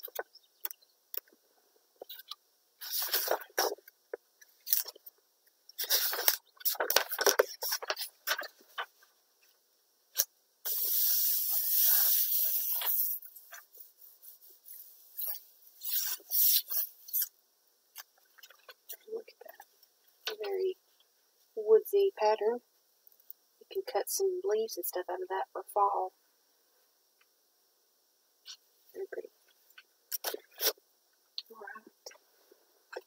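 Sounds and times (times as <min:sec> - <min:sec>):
paper rustling: 0:02.8 - 0:03.8, 0:05.8 - 0:09.1
plastic wrap crinkling: 0:05.8 - 0:09.0.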